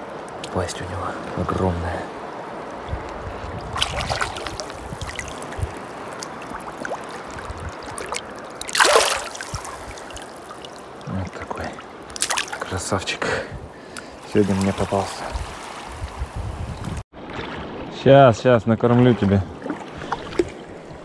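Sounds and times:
water sloshing and trickling: 0.0s - 18.0s, 18.6s - 21.0s
fish tail splash: 3.7s - 12.7s, 18.9s - 21.0s.

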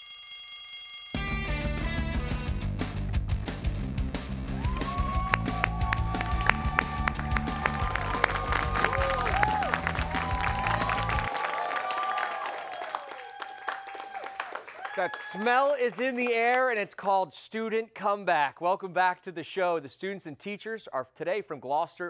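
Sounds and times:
upbeat tv theme music: 1.2s - 11.3s.

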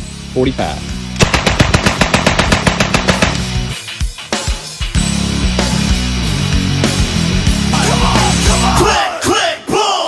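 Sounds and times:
rock music: 0.0s - 9.2s
submachine gun burst: 1.2s - 3.7s.

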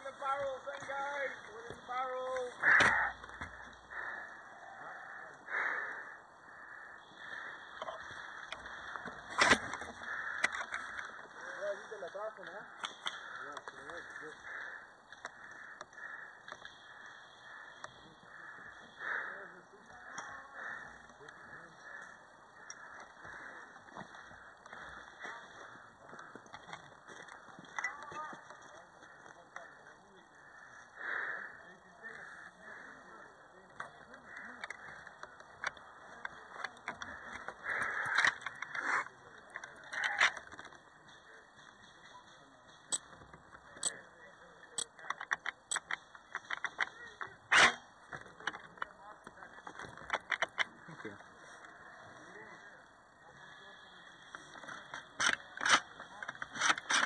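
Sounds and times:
distant indistinct voices: 0.0s - 57.0s.

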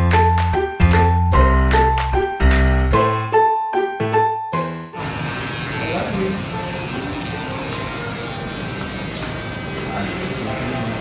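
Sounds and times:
electric hair clippers buzzing: 5.0s - 11.0s.

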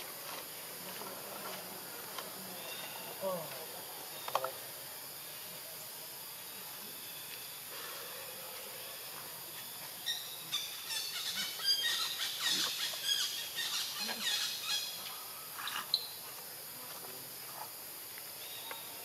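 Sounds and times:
steady high hiss: 0.0s - 19.0s.

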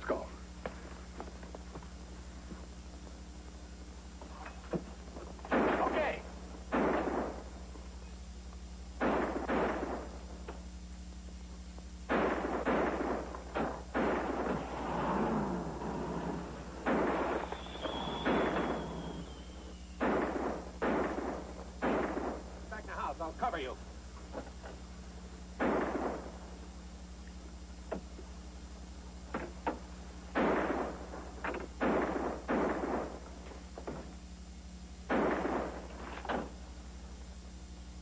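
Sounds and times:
high falling whine: 0.0s - 38.0s
steady low hum: 0.0s - 38.0s
echoing gunshots: 5.4s - 7.7s, 8.9s - 10.4s, 12.0s - 23.6s, 25.6s - 26.9s, 30.3s - 33.5s, 35.0s - 36.7s.

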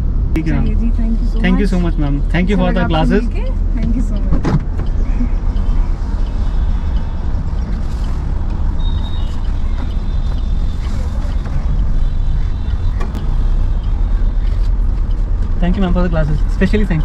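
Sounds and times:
car idling: 0.0s - 17.0s
street traffic: 0.0s - 17.0s
person speaking: 0.4s - 4.3s.

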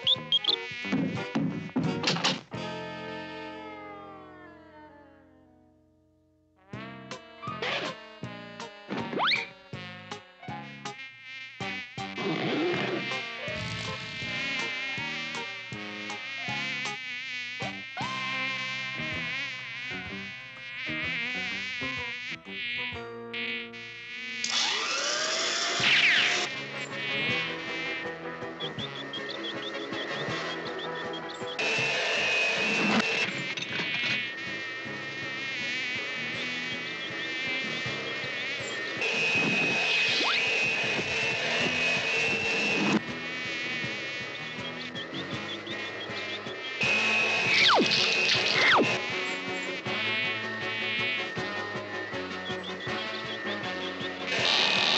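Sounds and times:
cartoon housefly buzz: 0.0s - 4.2s, 6.6s - 54.9s
background music: 0.0s - 6.0s, 6.7s - 11.0s, 11.6s - 17.0s, 25.8s - 33.4s, 34.3s - 54.9s.

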